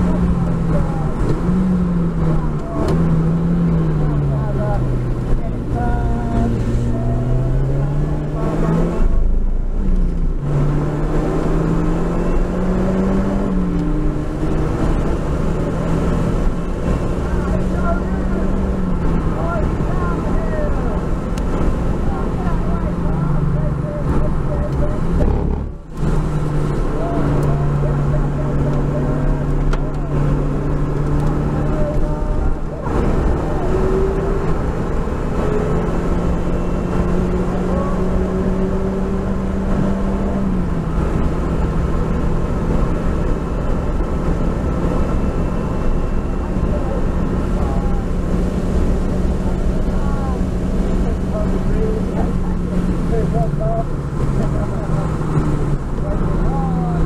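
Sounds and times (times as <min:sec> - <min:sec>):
car engine running hard: 0:00.0 - 0:57.0
road and wind noise: 0:00.0 - 0:57.0.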